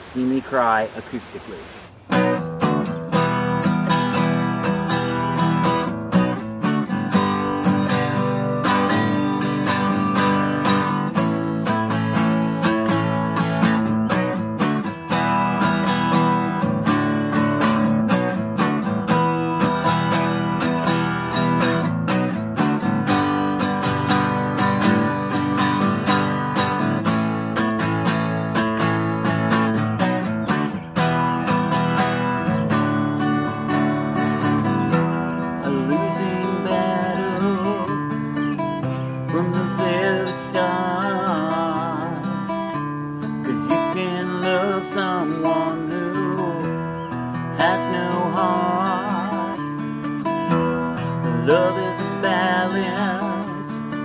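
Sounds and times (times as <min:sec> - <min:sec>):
acoustic guitar strumming: 0:01.9 - 0:54.0.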